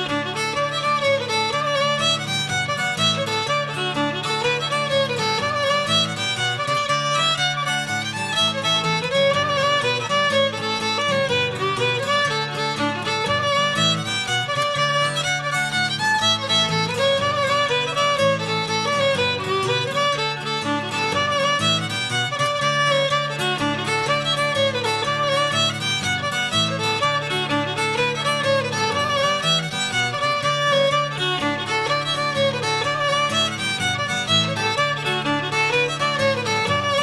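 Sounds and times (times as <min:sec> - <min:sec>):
fiddle melody: 0:00.0 - 0:37.0
instrumental accompaniment: 0:00.0 - 0:37.0.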